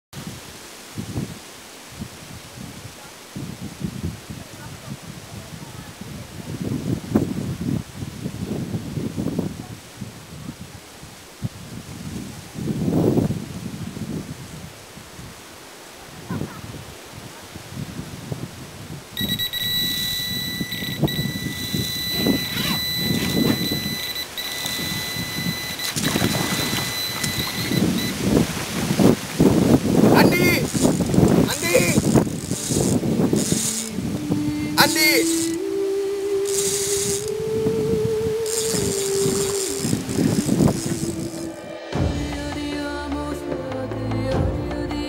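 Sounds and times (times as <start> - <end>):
wind buffeting microphone: 0.2 - 15.5, 16.1 - 41.6
high-pitched electronic alarm tone: 19.2 - 28.2, 36.5 - 37.3.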